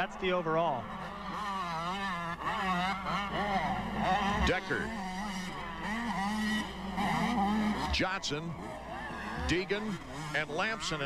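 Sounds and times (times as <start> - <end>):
motocross bikes revving: 0.0 - 11.0.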